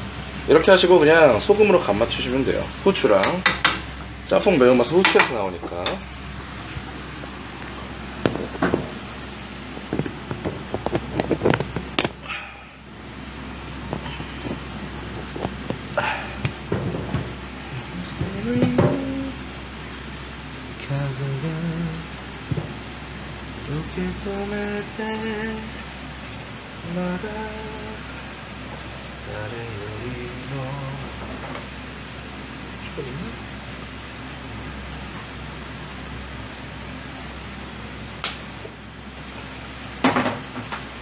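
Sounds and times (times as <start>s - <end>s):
low kitchen hum: 0.0s - 41.0s.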